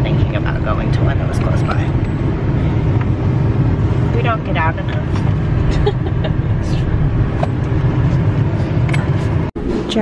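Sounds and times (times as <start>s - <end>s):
road and engine rumble in cab: 0.0s - 10.0s.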